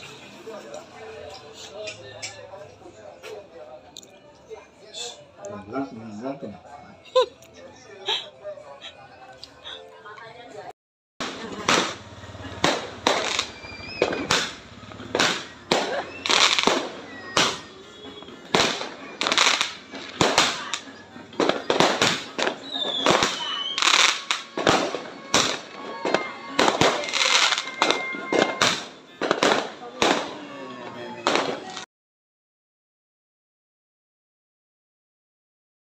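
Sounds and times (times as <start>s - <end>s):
fireworks bangs and crackling: 11.2s - 31.8s
fireworks whistling: 11.2s - 31.8s.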